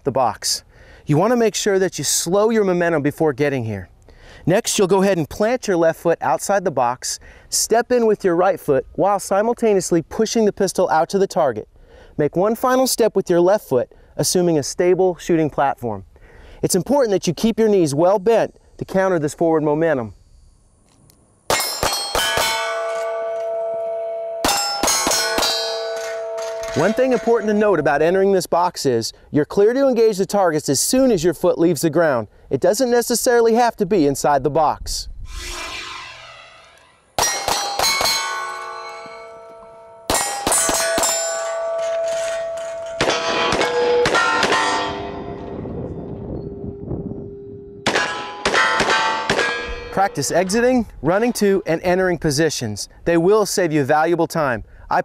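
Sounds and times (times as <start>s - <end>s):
steel targets clanging: 21.5s - 28.2s, 35.7s - 46.5s, 47.8s - 51.8s
pistol shots: 47.9s - 49.8s.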